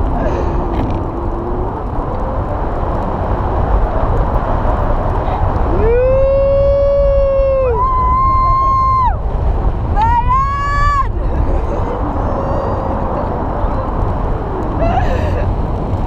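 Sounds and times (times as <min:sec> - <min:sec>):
wind rushing over microphone: 0:00.0 - 0:16.0
person yelling: 0:10.0 - 0:11.2.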